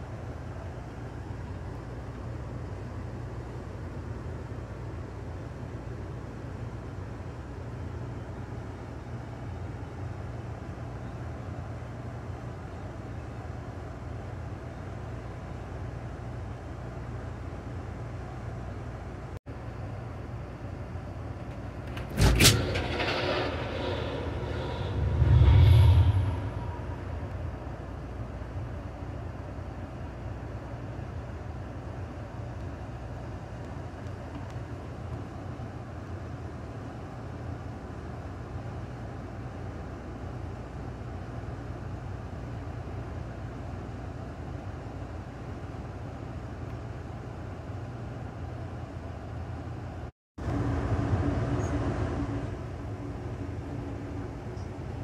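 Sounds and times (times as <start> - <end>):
train rumbling on track: 21.0 - 30.2.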